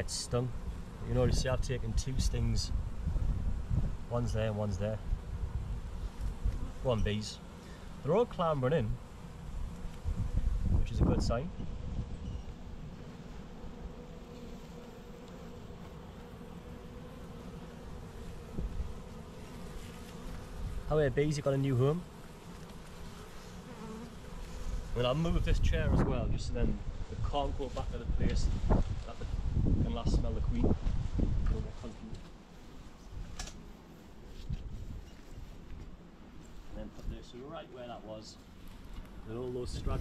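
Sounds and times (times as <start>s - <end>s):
bees buzzing: 0.0s - 25.7s.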